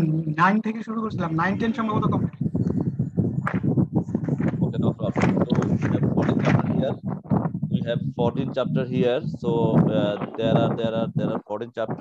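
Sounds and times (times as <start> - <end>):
choppy stuttering voice: 0.0 - 12.0.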